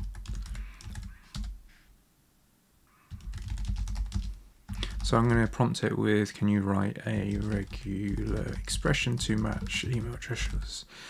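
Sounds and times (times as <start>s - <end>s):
computer keyboard typing: 0.0s - 1.6s, 3.1s - 5.6s, 7.1s - 10.7s.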